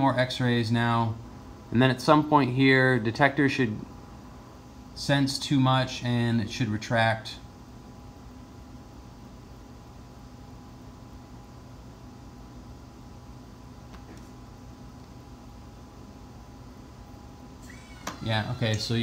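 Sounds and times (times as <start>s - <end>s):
machine hum with high whine: 0.0s - 19.0s.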